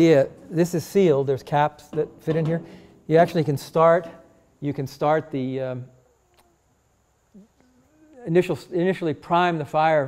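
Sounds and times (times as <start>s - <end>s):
faint voice: 7.4s - 8.8s.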